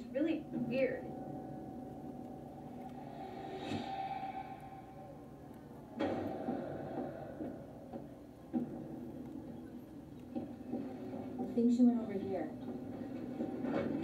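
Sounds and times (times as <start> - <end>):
low droning tones: 0.0 - 10.2
rushing swell: 1.1 - 8.5
sudden hit: 3.4 - 9.3.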